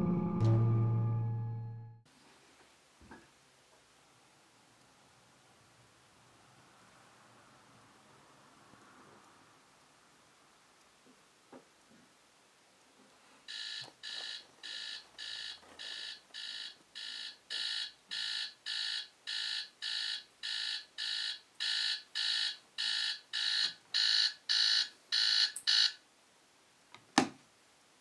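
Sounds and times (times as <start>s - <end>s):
phone alarm beeping: 13.5s - 26.0s.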